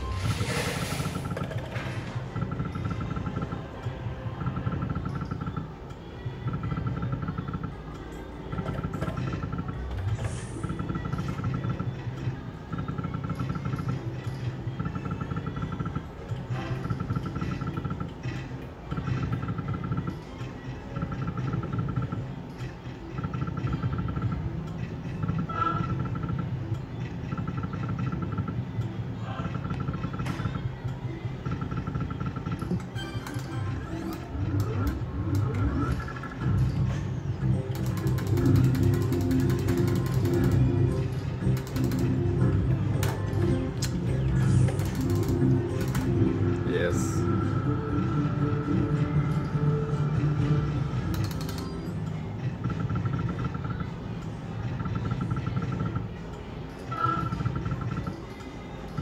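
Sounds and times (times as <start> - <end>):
slot machine reel-spin sounds: 0.0 - 5.7, 31.4 - 53.9.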